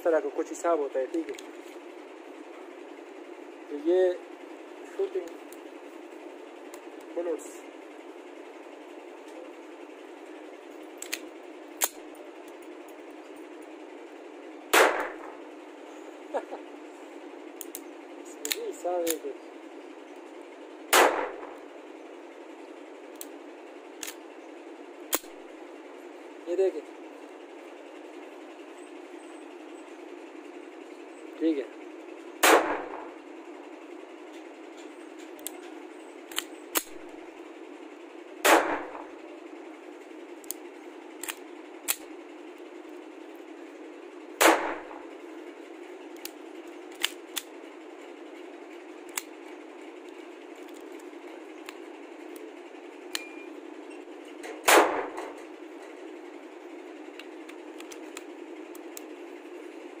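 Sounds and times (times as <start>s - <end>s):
pistol shots with echo: 14.7s - 15.3s, 20.9s - 21.6s, 32.4s - 33.0s, 38.4s - 39.1s, 44.4s - 45.0s, 54.6s - 55.3s
pistol slide clicks: 24.0s - 24.2s.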